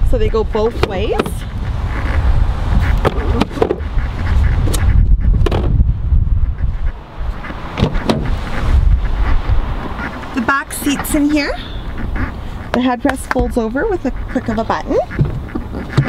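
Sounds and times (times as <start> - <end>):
wind rumbling on microphone: 0.0 - 16.0.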